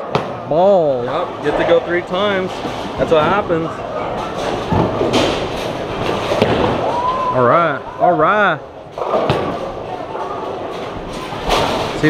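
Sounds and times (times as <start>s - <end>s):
bowling balls rolling: 0.0s - 12.0s
bowling pins clattering: 0.0s - 12.0s
faint voices: 0.0s - 12.0s.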